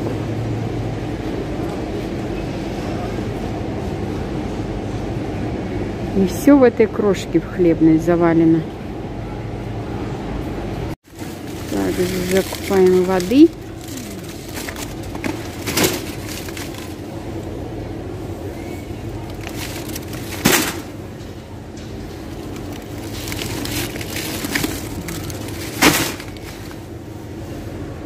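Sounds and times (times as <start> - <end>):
steady low hum: 0.0 - 28.0
water packs thumping into trolley: 14.5 - 16.8, 19.6 - 21.0, 25.6 - 26.7.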